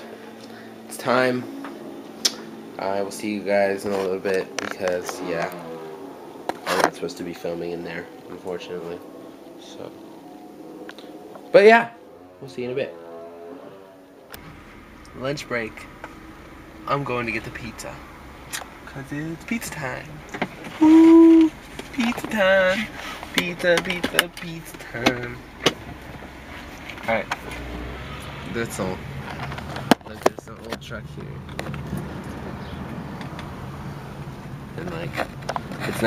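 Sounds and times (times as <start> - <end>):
car engine and road hum: 0.0 - 36.0
faint held tone: 20.8 - 21.6
person speaking: 20.8 - 24.2.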